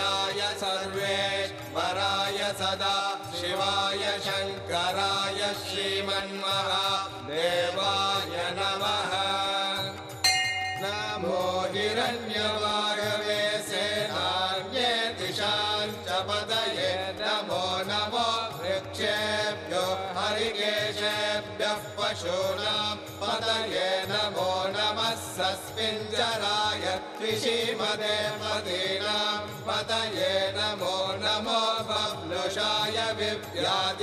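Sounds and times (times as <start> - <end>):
person chanting mantras: 0.0 - 34.0.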